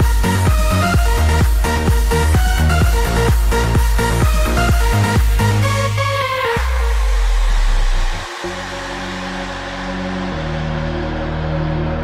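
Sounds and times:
electronic dance music: 0.0 - 12.0
heavy bass: 0.0 - 12.0
sustained synth chords: 0.0 - 12.0.

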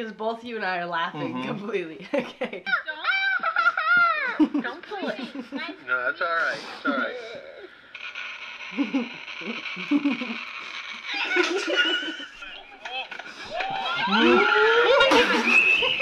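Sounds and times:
people laughing: 2.0 - 5.8, 8.7 - 16.0.

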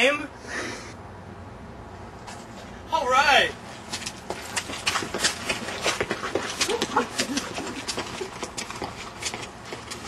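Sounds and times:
hurried footsteps outdoors: 2.0 - 10.0.

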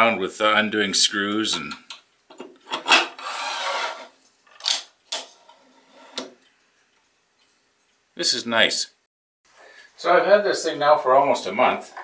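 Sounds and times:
metal scraping as it slides: 3.2 - 4.2, 5.3 - 6.3.

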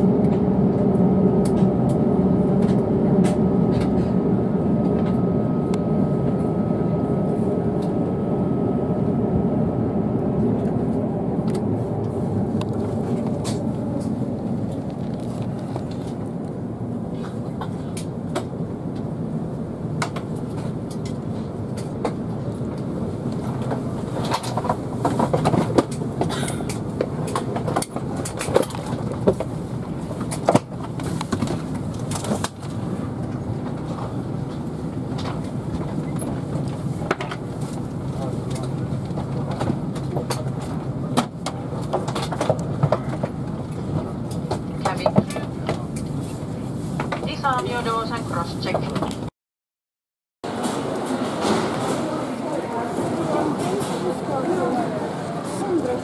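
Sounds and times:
aircraft cabin hum: 0.0 - 49.3
passengers' voices: 0.0 - 49.3, 50.5 - 56.0.

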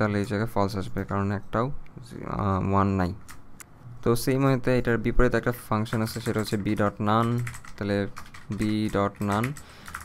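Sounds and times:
typing on computer keyboard: 5.8 - 10.0.

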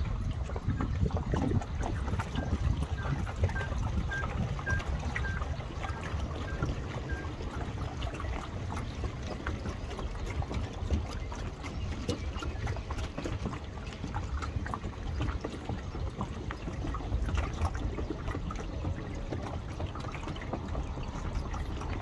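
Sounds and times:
water lapping: 0.0 - 22.0
wind rumbling on microphone: 0.0 - 22.0
high-pitched beeps: 2.4 - 7.3.

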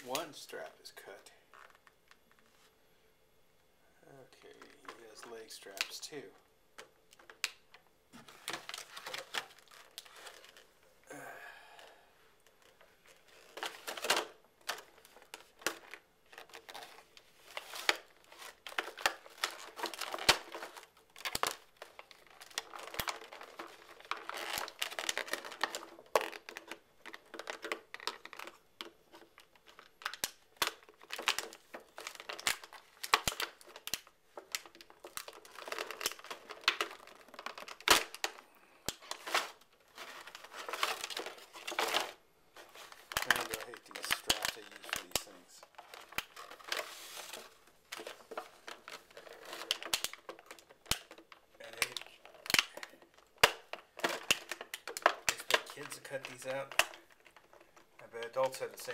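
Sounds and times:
plastic packaging crinkling: 4.2 - 10.9, 11.7 - 58.9
plastic straps being cut: 17.8 - 28.5.

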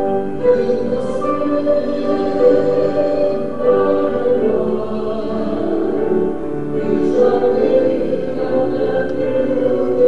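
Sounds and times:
voices singing sacred music: 0.0 - 10.0.

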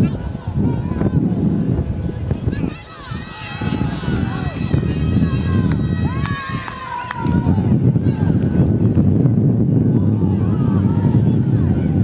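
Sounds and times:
wind buffeting microphone: 0.0 - 12.0
spectators shouting encouragement: 2.4 - 8.6, 9.9 - 12.0.

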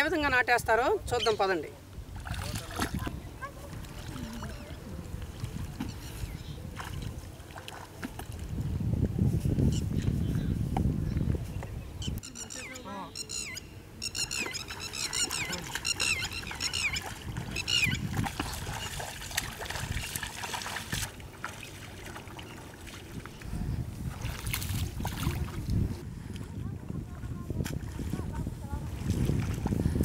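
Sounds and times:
feet wading through water: 2.1 - 9.2, 14.2 - 30.0
bird chirping: 11.5 - 18.0.

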